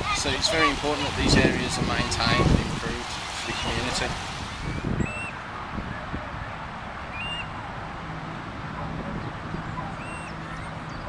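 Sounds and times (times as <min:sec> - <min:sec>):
outdoor hiss: 0:00.0 - 0:05.3
birds whistling: 0:03.4 - 0:05.4, 0:06.4 - 0:07.6, 0:08.8 - 0:11.0.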